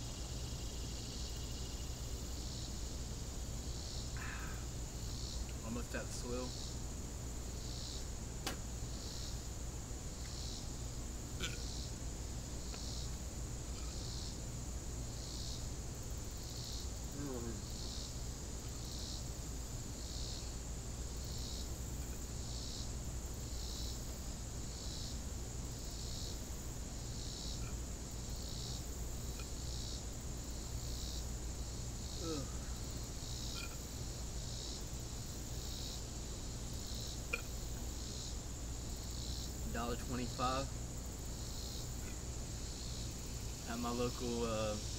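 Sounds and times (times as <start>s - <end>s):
high-pitched insect buzz: 0.0s - 44.9s
pulsing insect call: 0.0s - 44.9s.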